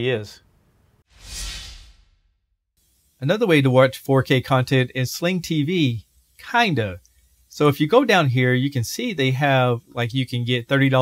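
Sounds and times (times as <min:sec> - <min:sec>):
whoosh sound effect: 0:01.1 - 0:02.4.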